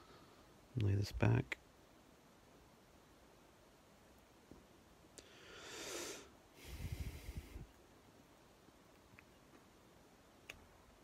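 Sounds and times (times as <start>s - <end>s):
person breathing into microphone: 5.2s - 7.7s
faint clicks: 10.4s - 10.7s.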